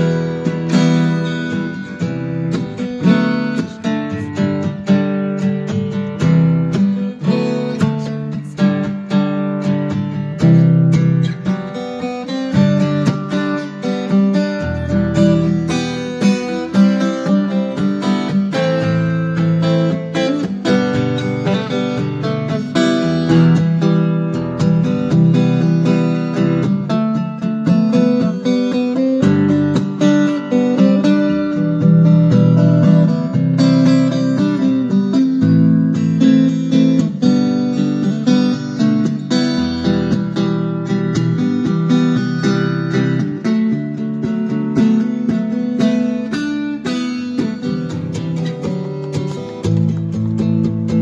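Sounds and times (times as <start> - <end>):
acoustic guitar playing: 0.0 - 51.0.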